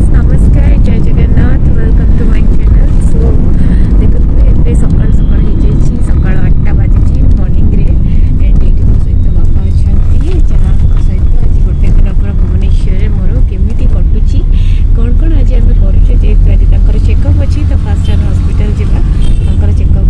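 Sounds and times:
car interior rumble: 0:00.0 - 0:20.0.

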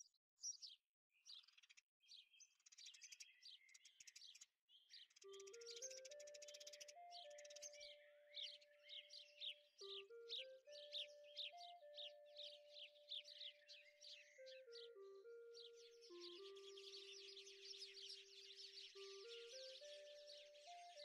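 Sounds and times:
recorded birdsong chirps: 0:00.0 - 0:21.0
slow gentle melody: 0:05.0 - 0:21.0.

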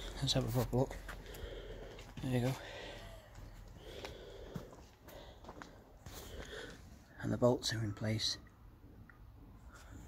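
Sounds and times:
faint breathing: 0:00.0 - 0:07.2.

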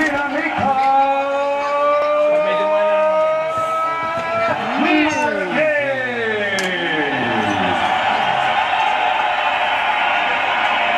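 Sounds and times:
announcer's voice: 0:00.0 - 0:07.8.

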